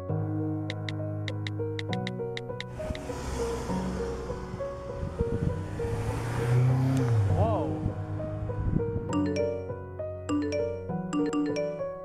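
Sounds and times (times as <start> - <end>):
background music: 0.0 - 12.0
car driving past: 2.7 - 9.1.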